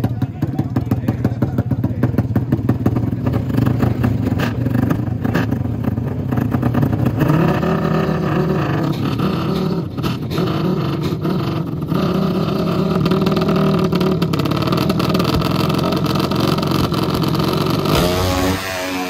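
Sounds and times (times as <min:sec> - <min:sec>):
dirt bike engines revving: 0:00.0 - 0:19.0.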